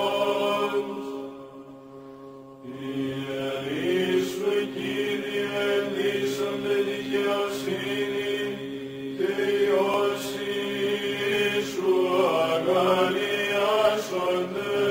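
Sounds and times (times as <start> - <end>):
voices chanting long notes: 0.0 - 14.9.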